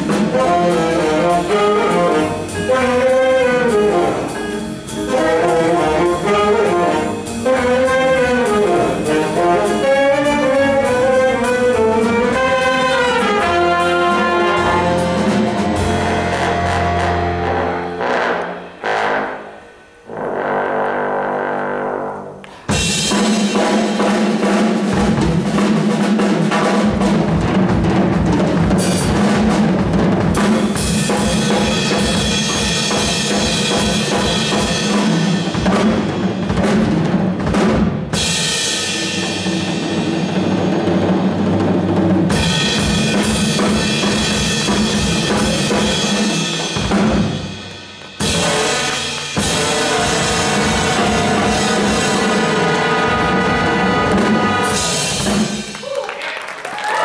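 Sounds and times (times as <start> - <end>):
drum kit beat: 0.0 - 18.9, 22.5 - 57.0
big band jazz: 0.0 - 55.9.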